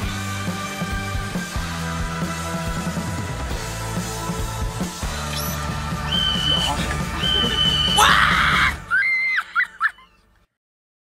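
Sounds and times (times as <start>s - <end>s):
song playing: 0.0s - 8.8s
high-pitched screaming: 5.4s - 9.6s.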